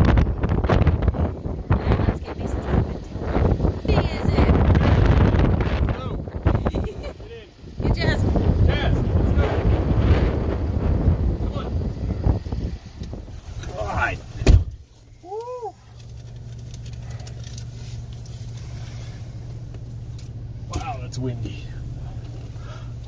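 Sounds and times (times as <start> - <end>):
strong wind buffeting microphone: 0.0 - 14.8
low hum inside cab: 0.0 - 23.0
van door opening: 12.3 - 16.4
door slamming shut: 14.4 - 14.8.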